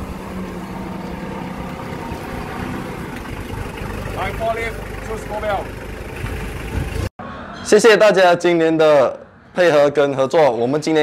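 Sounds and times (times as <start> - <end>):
forklift engine running: 0.0 - 7.1.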